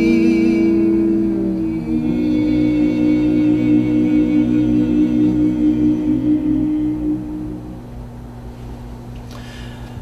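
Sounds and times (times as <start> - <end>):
male group singing a cappella: 0.0 - 7.8
steady low hum: 0.0 - 10.0.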